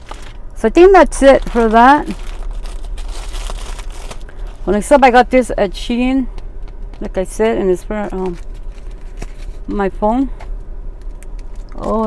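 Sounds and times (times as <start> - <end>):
plastic bag rustling: 0.0 - 5.2, 8.0 - 9.7.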